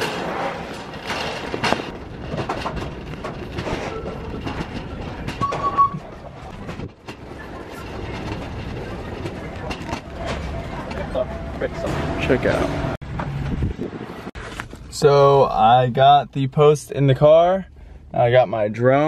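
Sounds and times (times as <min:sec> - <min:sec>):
shopping cart rolling and rattling: 0:00.0 - 0:11.5.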